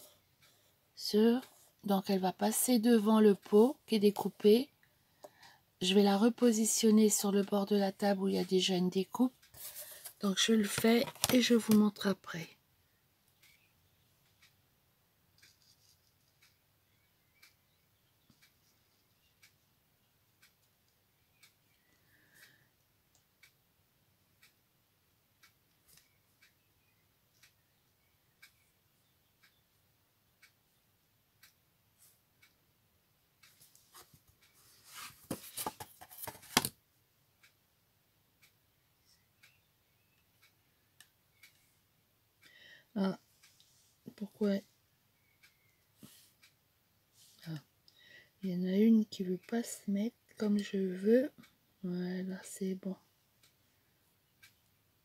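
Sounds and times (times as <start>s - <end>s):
crackling handling noise: 9.5s - 11.8s.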